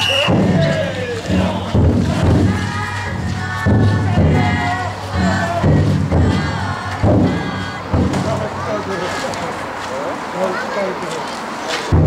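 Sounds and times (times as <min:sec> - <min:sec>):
deep booming drum beats: 0:00.0 - 0:09.0
people chanting loudly: 0:00.2 - 0:09.7.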